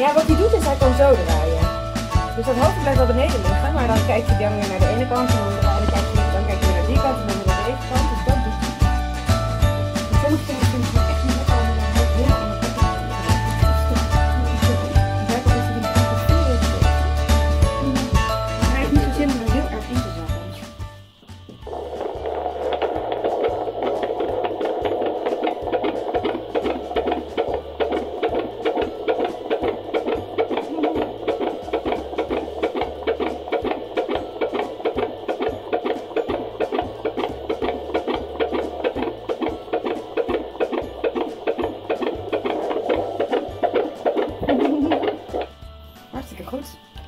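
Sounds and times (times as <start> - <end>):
fetal heartbeat whooshing pulse: 0.0 - 20.5, 21.6 - 45.9.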